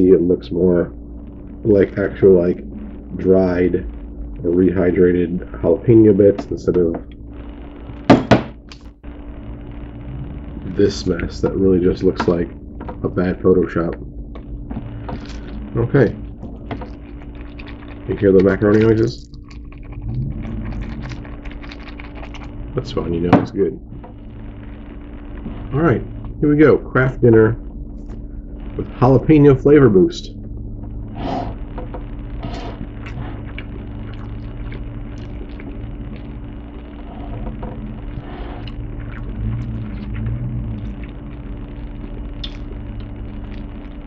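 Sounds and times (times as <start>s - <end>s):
steady low hum: 0.0s - 44.0s
man chewing food: 14.4s - 22.7s, 30.3s - 44.0s.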